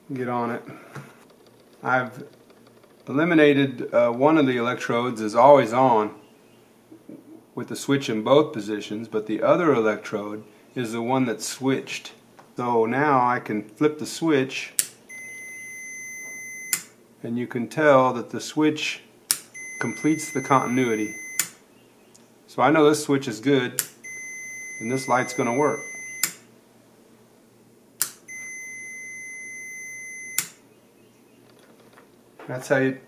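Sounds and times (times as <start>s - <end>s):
multimeter continuity beep: 15.0s - 17.0s, 19.5s - 21.6s, 24.0s - 26.5s, 28.2s - 30.6s
switch click: 21.4s - 21.6s, 23.8s - 24.0s, 28.0s - 28.3s.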